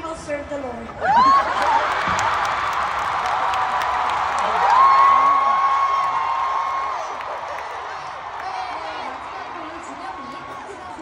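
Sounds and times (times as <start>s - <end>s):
crowd cheering and screaming: 1.0s - 11.0s.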